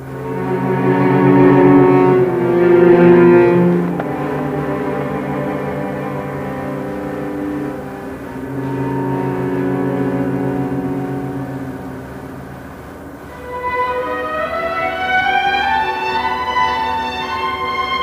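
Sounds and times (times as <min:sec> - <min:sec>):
string orchestra playing: 0:00.0 - 0:18.0.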